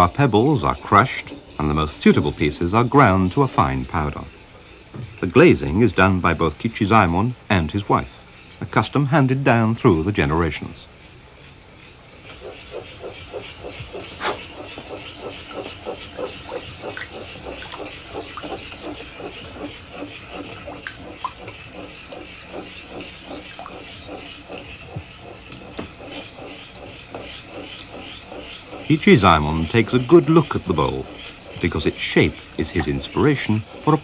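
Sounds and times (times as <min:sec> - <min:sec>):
brush strokes of wet glaze: 0:00.0 - 0:34.0.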